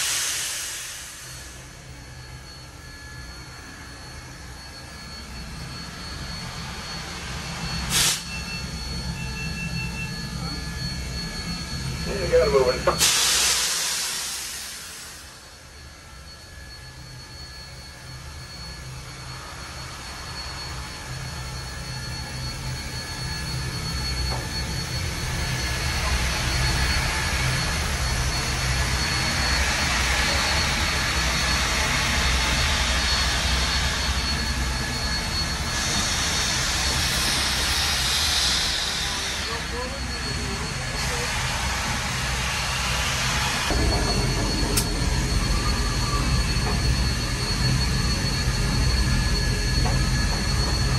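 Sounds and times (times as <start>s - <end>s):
steam hissing: 0.0s - 2.7s, 5.1s - 9.1s, 9.8s - 15.8s, 18.6s - 50.9s
low throbbing locomotive rumble: 0.0s - 50.9s.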